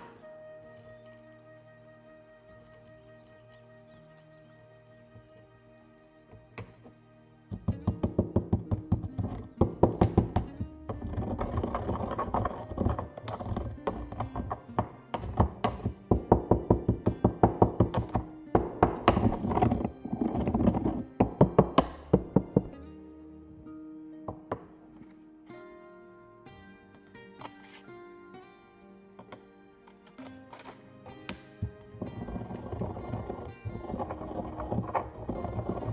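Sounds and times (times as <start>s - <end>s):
soft background music: 0.0s - 35.9s
pestle pounding in stone mortar: 7.5s - 22.8s.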